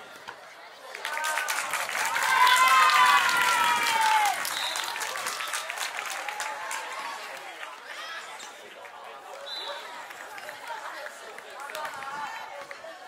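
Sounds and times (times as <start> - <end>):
chatter: 0.0 - 13.0
spectators clapping: 0.8 - 8.0, 8.6 - 13.0.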